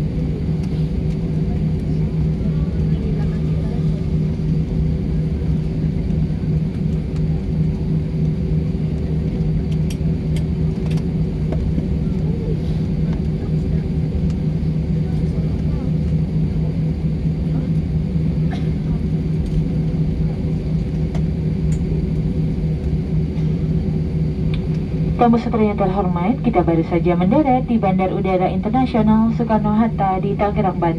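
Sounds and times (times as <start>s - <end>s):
airliner cabin rumble: 0.0s - 30.9s
constant hum: 0.0s - 30.9s.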